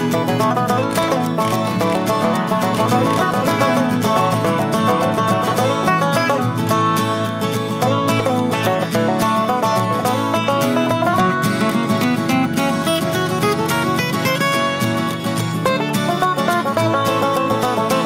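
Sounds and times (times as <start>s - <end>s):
upbeat bluegrass acoustic music: 0.0s - 18.0s.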